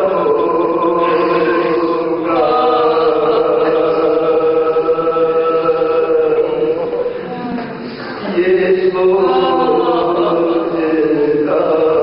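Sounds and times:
man reciting melodically: 0:00.0 - 0:07.4, 0:08.2 - 0:12.0.

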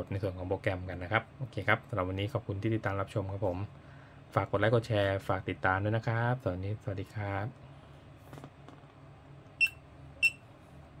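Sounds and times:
touchscreen panel beeps: 0:09.6 - 0:10.4.

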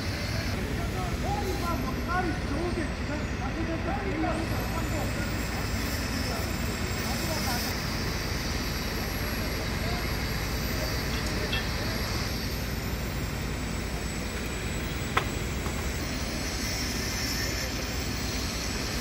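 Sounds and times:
distant voices: 0:00.0 - 0:18.3
crane engine rumbling: 0:00.0 - 0:19.0.

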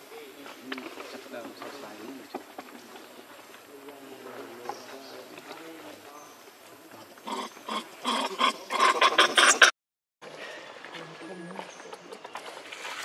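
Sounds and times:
infant monkey whimpering: 0:07.3 - 0:09.7.

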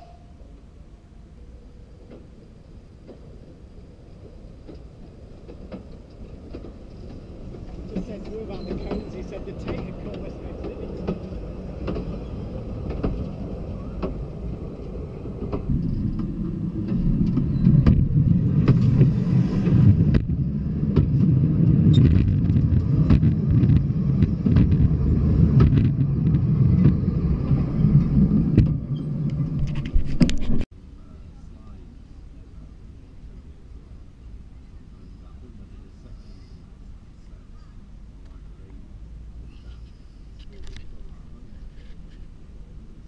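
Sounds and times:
railway wheels rumbling on rail: 0:00.0 - 0:43.0
wheel clicks on rail: 0:04.6 - 0:20.3.

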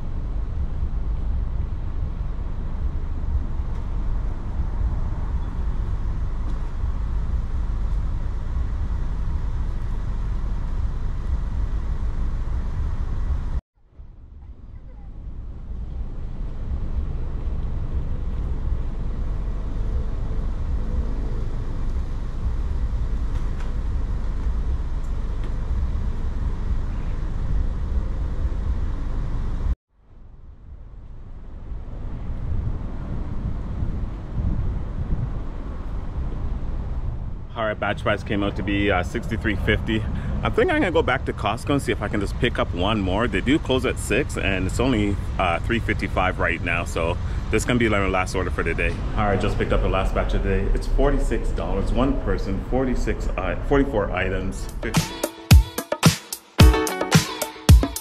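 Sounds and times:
wind buffeting microphone: 0:31.2 - 0:45.8.

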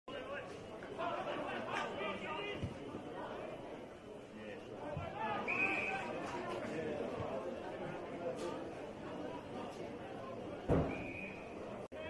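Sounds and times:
indistinct chatter of voices: 0:00.1 - 0:12.0.

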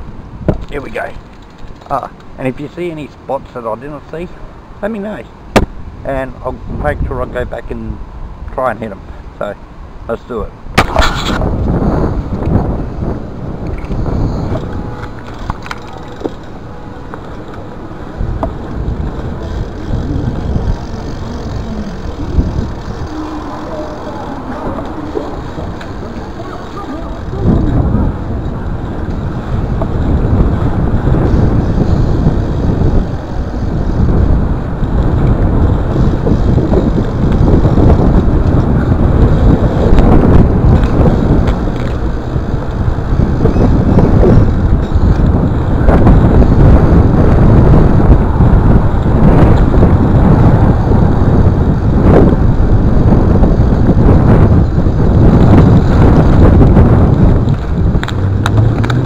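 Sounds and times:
wind on microphone: 0:04.3 - 0:59.0
bike tyre rumble on asphalt: 0:10.7 - 0:59.0.

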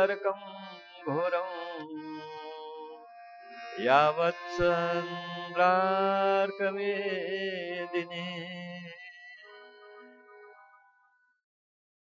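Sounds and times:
man chanting: 0:00.0 - 0:01.9, 0:03.8 - 0:08.8.

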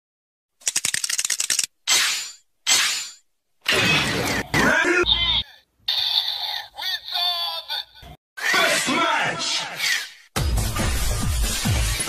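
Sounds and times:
fast rattle of sharp clicks: 0:00.6 - 0:01.7.

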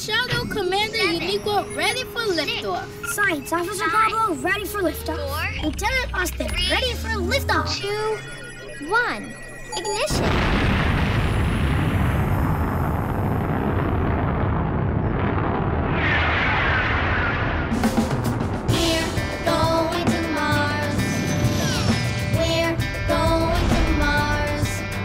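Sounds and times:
rocket engine rumble: 0:10.1 - 0:25.0
music with melody and beat: 0:17.8 - 0:25.0.

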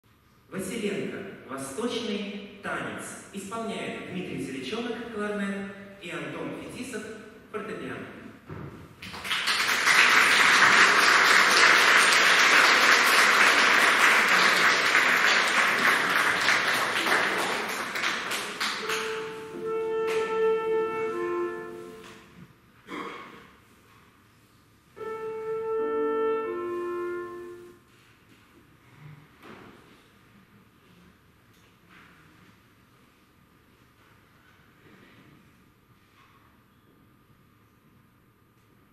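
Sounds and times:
audience applauding: 0:09.0 - 0:20.2
clarinet tuning: 0:18.3 - 0:22.4, 0:24.9 - 0:28.1.

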